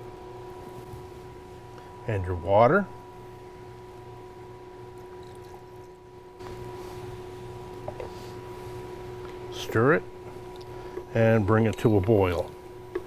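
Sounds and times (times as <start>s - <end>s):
electrical hum with whine: 0.0s - 13.0s.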